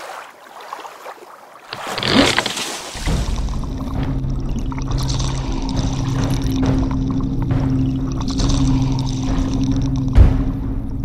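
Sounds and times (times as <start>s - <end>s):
body splashing into water: 0.0s - 4.1s
muffled underwater rumble: 3.1s - 11.0s.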